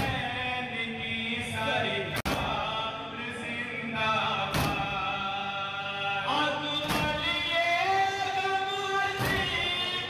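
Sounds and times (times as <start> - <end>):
group of voices singing: 0.0 - 10.0
men chanting a lament: 0.0 - 10.0.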